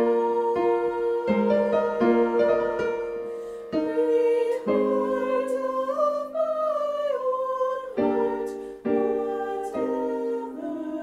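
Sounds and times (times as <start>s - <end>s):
keyboard chords: 0.0s - 6.4s
choir singing: 0.0s - 11.0s.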